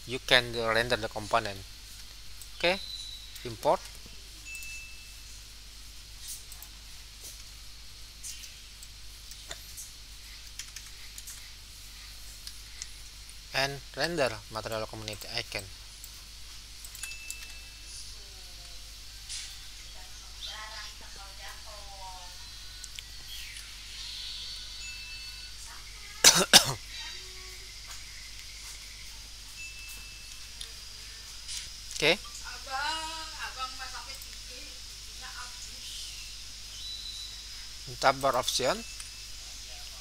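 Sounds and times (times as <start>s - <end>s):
steady low hum: 0.0s - 40.0s
person coughing: 26.2s - 26.8s.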